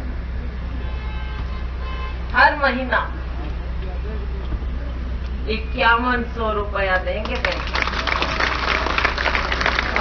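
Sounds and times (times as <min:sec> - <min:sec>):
outdoor rally background noise: 0:00.0 - 0:10.0.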